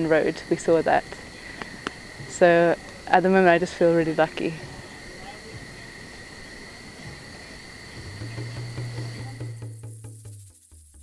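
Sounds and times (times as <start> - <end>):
night animals calling drone: 0.0 - 9.8.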